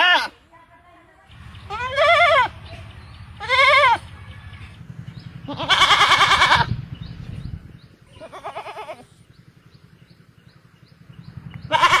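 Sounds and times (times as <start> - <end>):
goats bleating: 0.0 - 0.4, 1.7 - 2.7, 3.4 - 4.1, 5.5 - 6.7, 8.2 - 9.1, 11.7 - 12.0.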